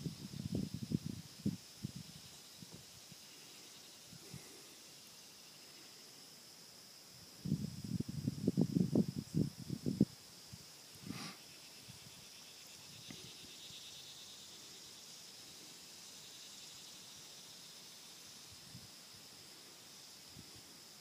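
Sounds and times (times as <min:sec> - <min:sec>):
insects droning: 0:00.0 - 0:21.0.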